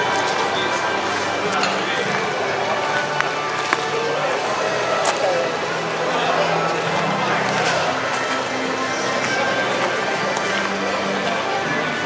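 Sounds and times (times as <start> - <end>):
background music: 0.0 - 12.0
indistinct crowd chatter: 0.0 - 12.0.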